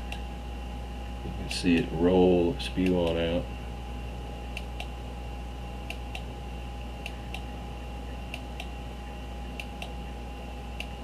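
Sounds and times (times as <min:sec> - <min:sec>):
steady hum: 0:00.0 - 0:11.0
computer mouse clicking: 0:09.6 - 0:10.0.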